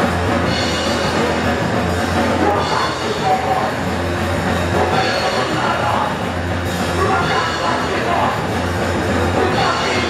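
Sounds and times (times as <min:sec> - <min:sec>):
drum kit: 0:00.0 - 0:10.0
electric bass: 0:00.0 - 0:10.0.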